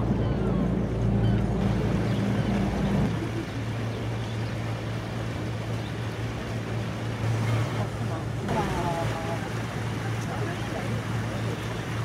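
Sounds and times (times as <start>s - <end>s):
boat engine drone: 0.0s - 12.0s
rushing water: 0.0s - 12.0s.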